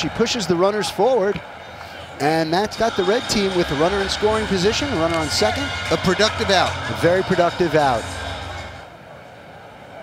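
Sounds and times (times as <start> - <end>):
quiet ballpark background noise: 0.0 - 10.0
low hum: 3.7 - 9.0.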